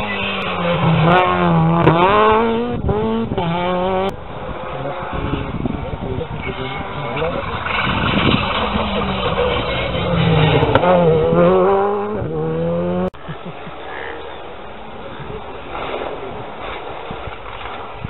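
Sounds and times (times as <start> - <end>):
rally car engine revving: 0.0 - 14.2.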